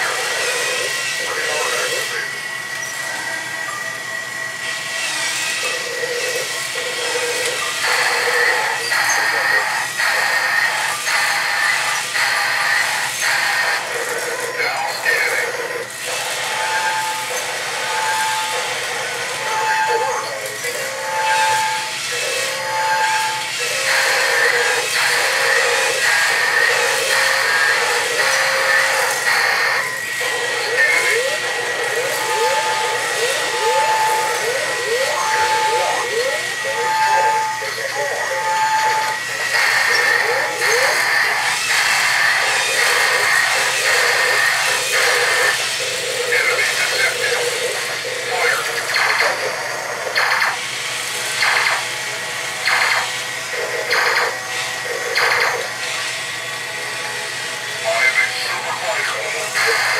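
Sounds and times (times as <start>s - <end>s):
toy gear motors whirring: 0.0s - 3.7s, 4.6s - 59.9s
steady high tone: 0.0s - 50.6s.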